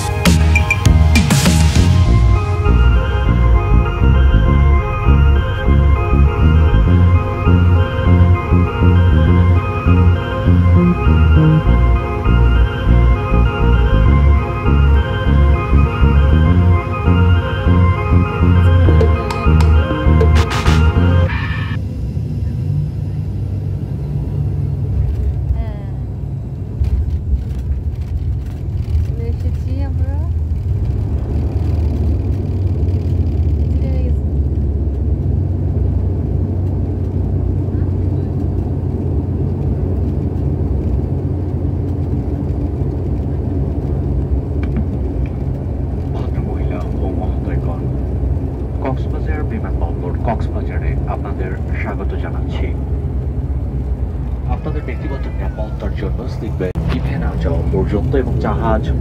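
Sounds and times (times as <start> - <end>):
propeller engine rumble: 0.0 - 59.0
wheels on runway: 21.3 - 59.0.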